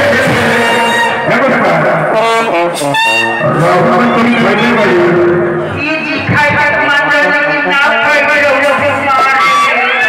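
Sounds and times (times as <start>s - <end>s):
trumpets playing held notes: 0.0s - 5.7s, 9.0s - 10.0s
brass band playing: 0.0s - 10.0s.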